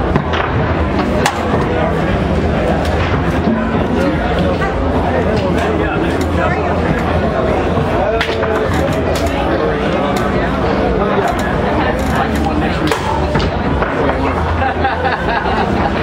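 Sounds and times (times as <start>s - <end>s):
chatter of many people: 0.0s - 16.0s.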